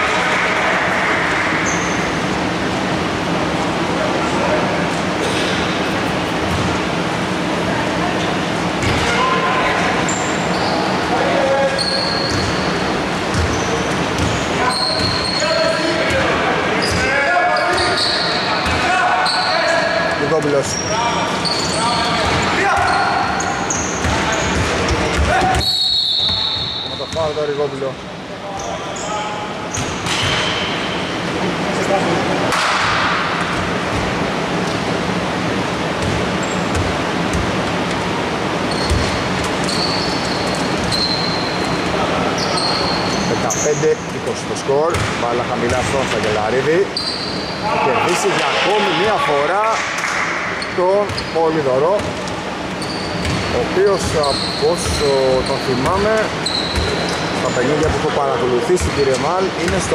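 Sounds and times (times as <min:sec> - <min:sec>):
sneakers squeaking on floor: 0:01.2 - 0:02.6, 0:05.2 - 0:07.1, 0:08.6 - 0:27.8, 0:28.5 - 0:31.3, 0:32.6 - 0:44.1, 0:44.9 - 0:49.3, 0:50.4 - 0:59.9
basketball bouncing: 0:13.3 - 0:14.4, 0:36.0 - 0:37.7, 0:38.7 - 0:39.8, 0:44.9 - 0:46.4, 0:53.2 - 0:54.2.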